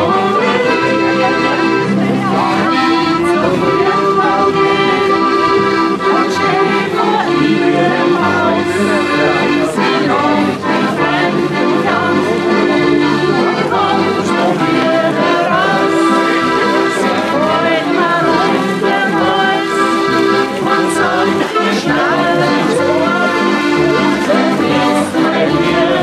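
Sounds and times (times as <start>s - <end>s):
button accordions playing folk tune: 0.0s - 26.0s
voices singing along: 0.0s - 26.0s.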